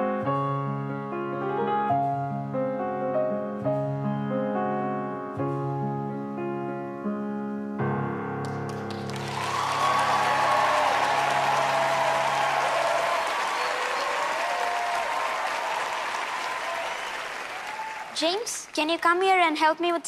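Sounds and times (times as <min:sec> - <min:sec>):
audience applauding and cheering: 0:08.4 - 0:18.8
whoops: 0:09.2 - 0:18.2.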